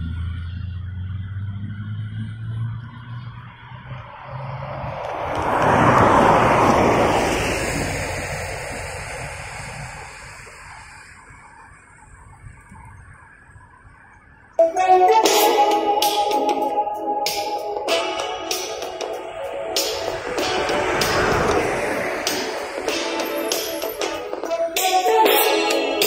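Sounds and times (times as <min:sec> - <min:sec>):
vehicle passing close by: 0:00.0 - 0:11.3, 0:18.0 - 0:24.8
low engine hum: 0:00.0 - 0:11.5, 0:19.0 - 0:24.5.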